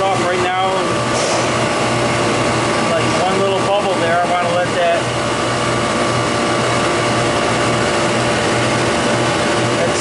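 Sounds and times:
refrigeration unit humming: 0.0 - 10.0.

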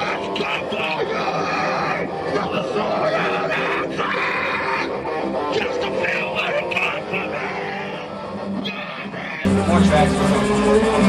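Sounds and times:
vocalist singing or shouting: 0.0 - 9.5
electric guitar: 0.0 - 11.0.

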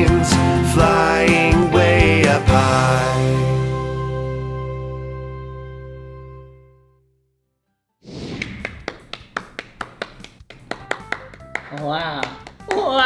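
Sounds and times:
music: 0.0 - 7.3, 10.4 - 13.0.

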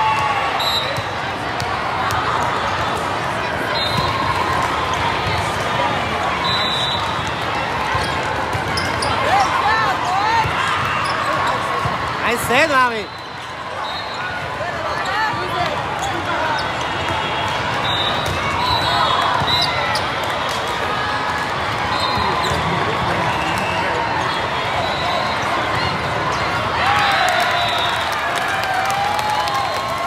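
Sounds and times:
spectator chatter: 0.0 - 30.0
sneakers squeaking on court: 7.0 - 13.4, 14.0 - 20.1, 21.9 - 22.8.

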